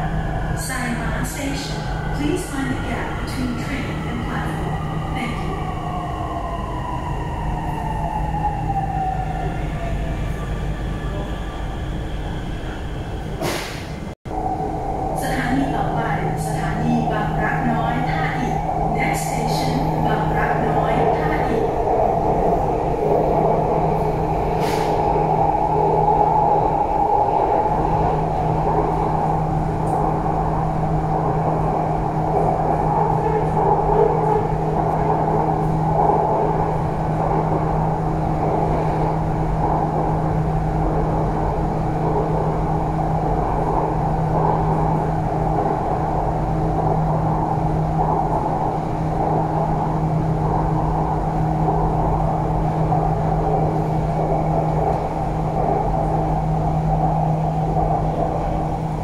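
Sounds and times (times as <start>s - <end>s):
train running rumble: 13.3s - 59.0s
constant low hum: 14.3s - 59.0s.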